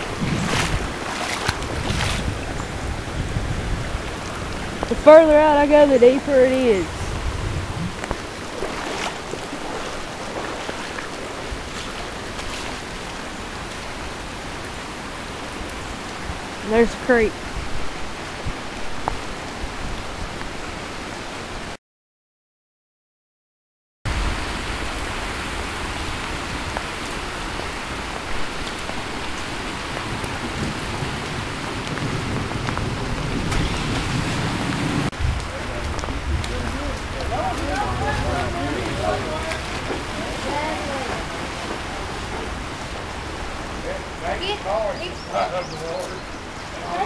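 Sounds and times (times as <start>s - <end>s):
rain and running water: 0.0s - 21.8s, 24.1s - 47.0s.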